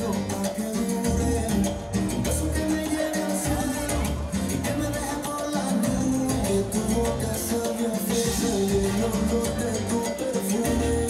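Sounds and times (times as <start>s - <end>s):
salsa music: 0.0s - 11.0s.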